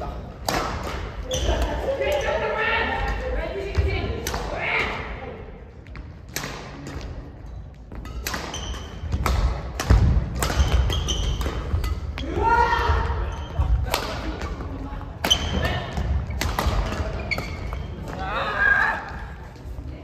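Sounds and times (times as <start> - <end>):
shoe squeaks: 1.2 - 2.4, 8.4 - 9.1, 10.5 - 11.9, 13.2 - 13.7, 15.2 - 18.0
racket striking shuttlecock: 7.9 - 12.3.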